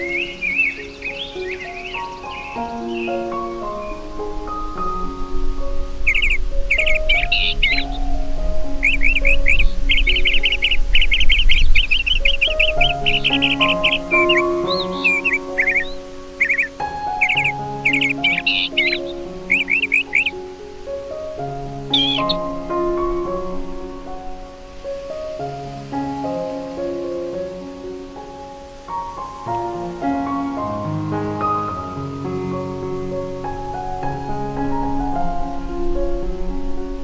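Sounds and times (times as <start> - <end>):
small birds chirping and trilling: 0.0 - 36.2
gentle piano music: 0.0 - 37.0
sharp high bird call: 6.1 - 8.0, 8.8 - 20.4, 21.9 - 22.6.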